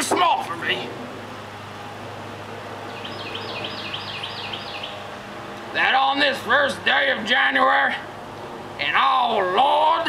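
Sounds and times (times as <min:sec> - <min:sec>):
bird singing high notes: 0:02.9 - 0:05.0.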